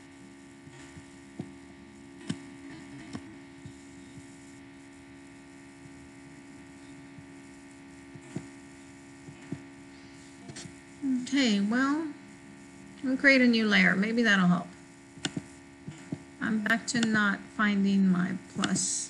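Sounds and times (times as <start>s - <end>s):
electrical mains hum: 0.0s - 19.0s
computer mouse clicks: 2.2s - 2.4s, 15.2s - 17.2s.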